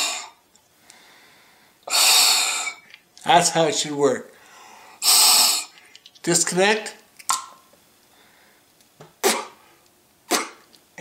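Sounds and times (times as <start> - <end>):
breath puffs into valve: 1.8 - 2.9, 4.6 - 6.0.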